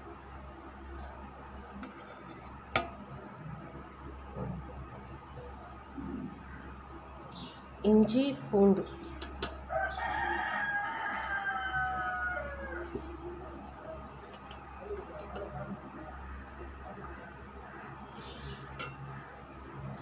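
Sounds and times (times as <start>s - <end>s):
rooster crowing: 9.6s - 14.8s.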